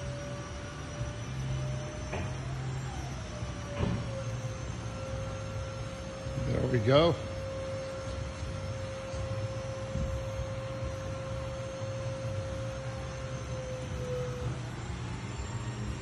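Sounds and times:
hydraulic pump whine: 0.0 - 16.0
low hum: 0.0 - 16.0.

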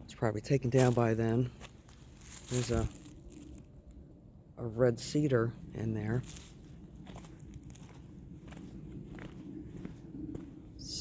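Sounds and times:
low steady rumble: 0.0 - 11.0
crunching and rustling: 0.6 - 4.0, 6.1 - 8.0.

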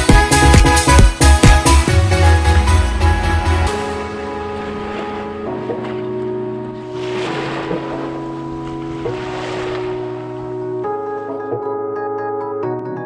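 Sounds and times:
background music of sustained chords: 0.0 - 13.0
sea waves washing: 2.3 - 11.6.

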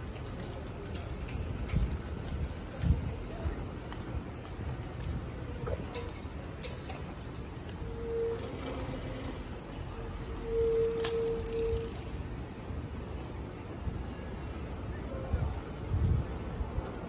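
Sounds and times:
low street noise: 0.0 - 17.0
bicycle brakes squealing: 7.7 - 12.3.

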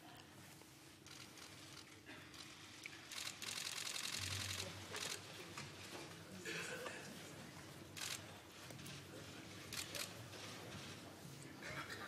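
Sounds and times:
camera shutters firing in burst: 1.0 - 5.2, 8.0 - 8.3, 9.7 - 10.1.

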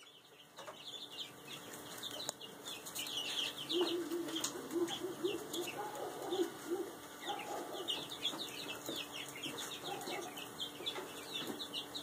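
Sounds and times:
chicks peeping: 0.0 - 12.0.

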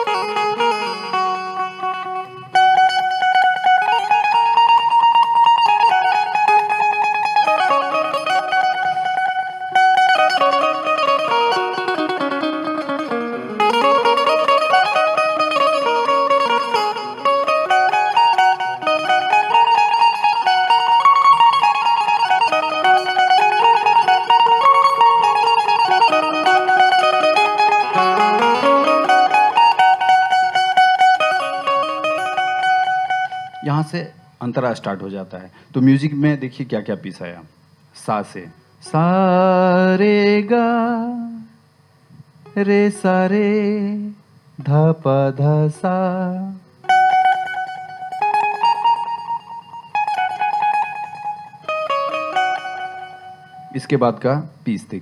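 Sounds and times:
keyed banjo picked notes: 0.0 - 34.2, 46.8 - 54.4.

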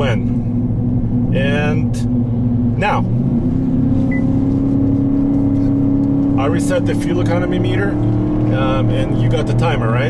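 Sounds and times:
truck engine accelerating: 0.0 - 10.0
high beep: 4.1 - 4.4.

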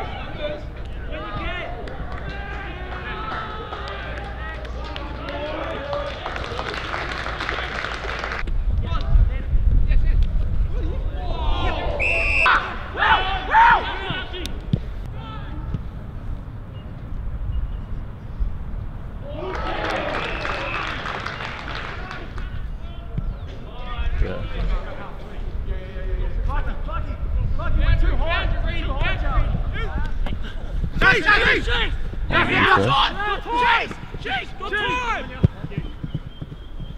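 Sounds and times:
wind rumble on microphone: 8.4 - 19.5, 22.2 - 36.9
people calling out: 32.3 - 34.0.

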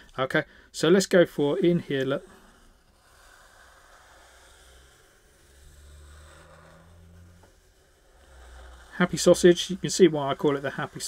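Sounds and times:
marker scratching on paper: 1.4 - 11.0.

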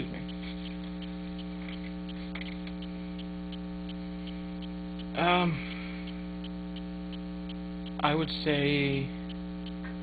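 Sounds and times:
faint small ticks: 0.0 - 8.2, 9.1 - 10.0
electrical mains hum: 0.0 - 10.0.

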